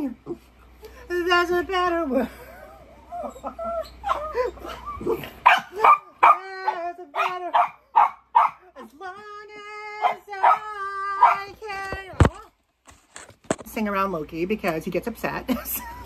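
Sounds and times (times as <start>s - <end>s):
small dog barking: 5.2s - 8.7s, 10.0s - 11.5s.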